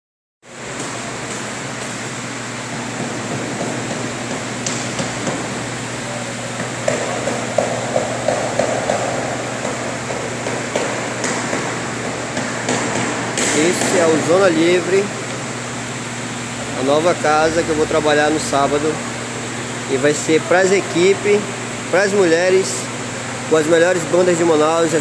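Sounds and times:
machine hum and hiss: 0.4s - 25.0s.

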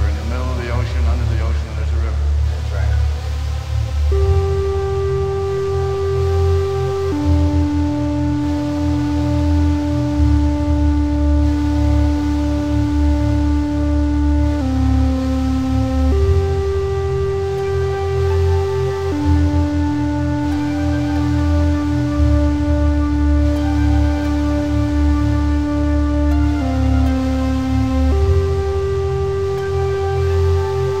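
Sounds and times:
spoken sample: 0.0s - 3.1s
low bass layer: 0.0s - 31.0s
held synth tones: 4.1s - 31.0s.

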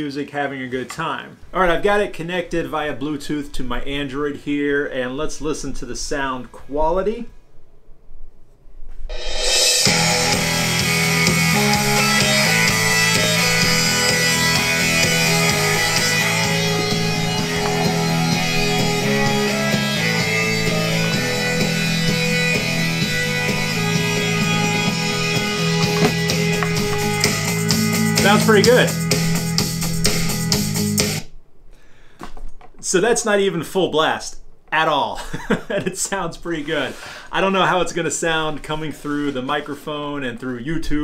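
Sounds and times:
rock music from speakers: 9.4s - 31.2s.

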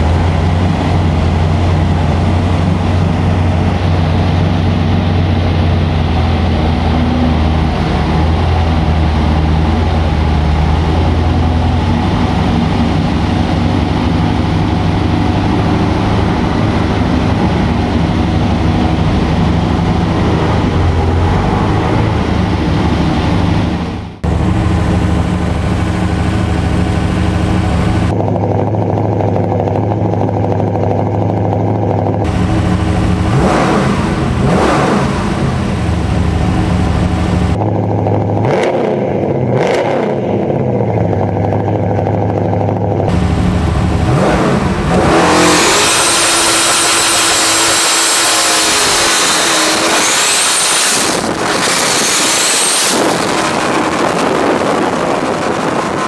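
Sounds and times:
car engine revving: 0.0s - 56.0s
wind noise: 43.0s - 56.0s.

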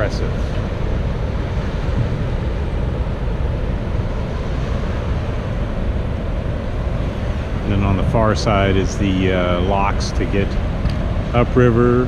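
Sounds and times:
man speaking: 0.0s - 0.4s, 7.6s - 10.6s, 11.4s - 12.0s
wind buffeting microphone: 0.0s - 12.0s.

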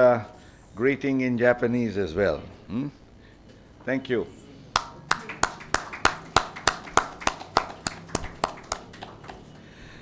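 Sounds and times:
hand clapping: 4.8s - 9.7s.

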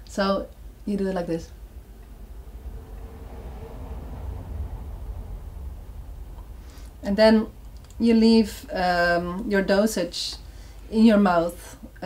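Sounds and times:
low background rumble: 0.0s - 11.9s.

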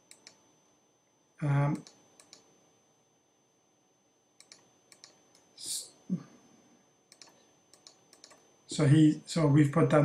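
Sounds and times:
computer mouse button clicking: 1.8s - 2.5s, 4.4s - 5.2s, 7.1s - 8.4s.

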